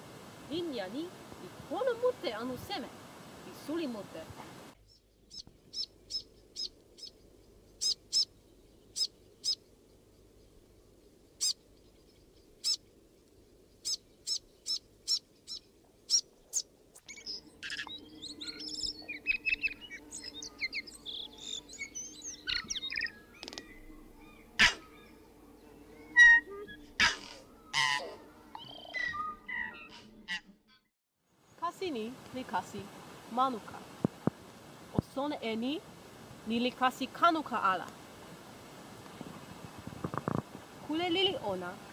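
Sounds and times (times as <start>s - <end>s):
birds calling: 3.5s - 30.9s.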